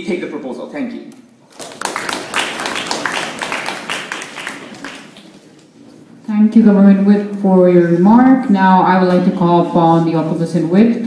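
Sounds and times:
group of people clapping: 1.5s - 5.7s.

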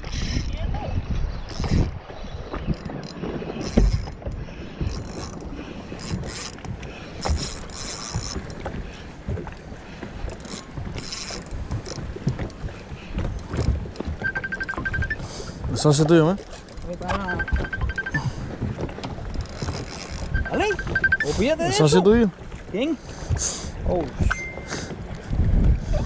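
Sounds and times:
wind on microphone: 0.0s - 15.8s, 23.2s - 26.0s
water lapping against boat hull: 0.0s - 26.0s
fishing reel clicks and rattles: 4.9s - 6.6s, 7.2s - 8.6s, 10.3s - 12.0s, 19.3s - 21.3s.

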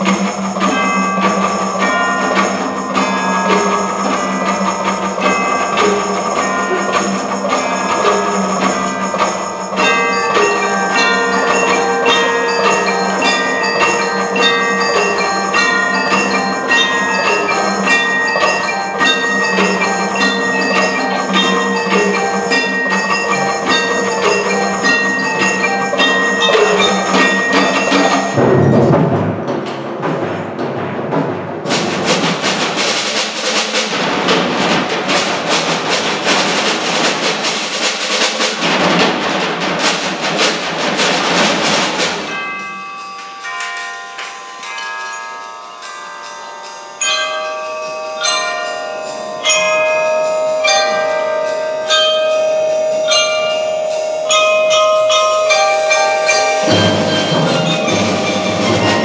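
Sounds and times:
ringing bell-like notes: 0.0s - 29.4s, 42.2s - 59.0s
percussion ensemble mallet instruments: 0.0s - 59.0s.

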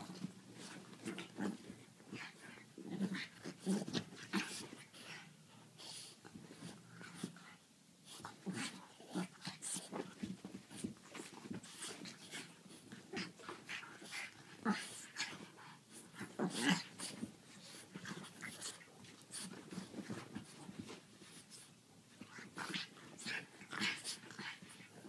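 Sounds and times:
dogs growling: 0.0s - 5.3s, 11.1s - 20.7s, 22.2s - 25.0s
paws scuffling on blankets: 0.0s - 25.0s.

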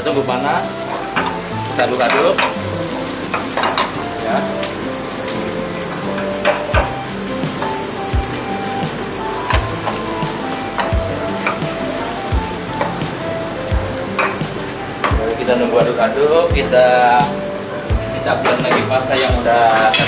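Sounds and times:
sauce sizzling in a wok: 0.0s - 18.4s, 19.0s - 20.0s
spatula tapping pan: 0.5s - 15.2s.

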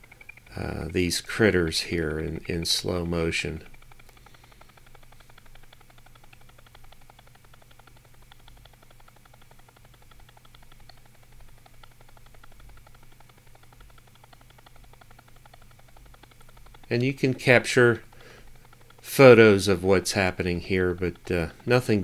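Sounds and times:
rapid even ticks: 0.0s - 22.0s
steady low hum: 0.0s - 22.0s.

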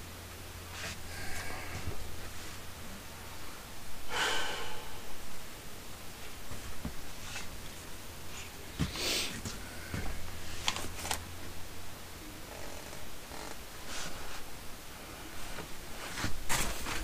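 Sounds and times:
rustling of items on a table: 6.5s - 11.2s, 15.4s - 17.0s.

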